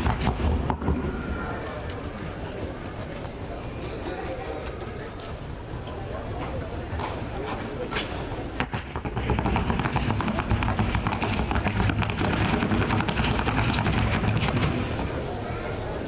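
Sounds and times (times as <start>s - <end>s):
rapid horse hoofbeats: 0.0s - 5.4s, 8.6s - 15.1s
murmur of voices: 0.0s - 16.0s.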